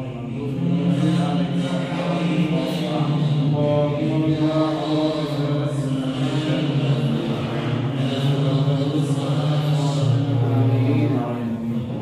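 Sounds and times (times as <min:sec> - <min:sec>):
man chanting a prayer: 0:00.0 - 0:12.0.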